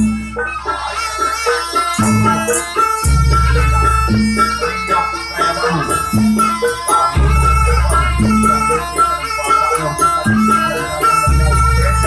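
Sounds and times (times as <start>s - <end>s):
hand drum: 0.0s - 12.0s
reed pipe melody: 0.0s - 12.0s.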